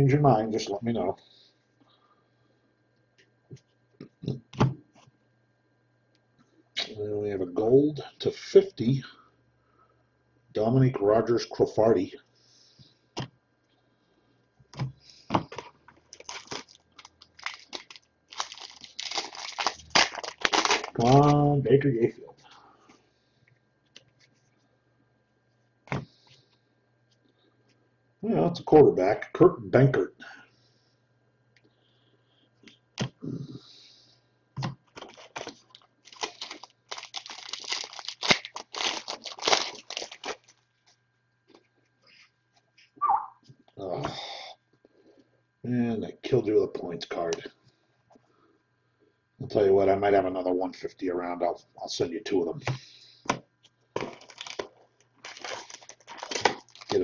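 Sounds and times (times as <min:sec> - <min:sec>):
foil wrappers crinkling: 0:15.5 - 0:21.4, 0:34.9 - 0:41.0, 0:54.0 - 0:57.0.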